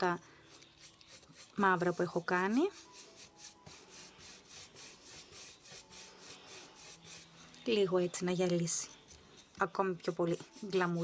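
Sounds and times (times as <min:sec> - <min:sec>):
paintbrush dabbing: 0:00.0 - 0:07.6, 0:08.6 - 0:11.0.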